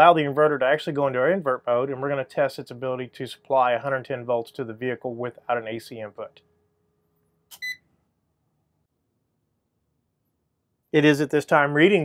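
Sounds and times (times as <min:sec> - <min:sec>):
short high beep: 0:07.5 - 0:07.8.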